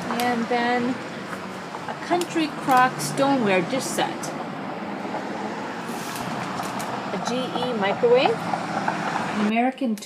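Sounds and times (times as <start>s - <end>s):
steady traffic noise: 0.0s - 10.0s.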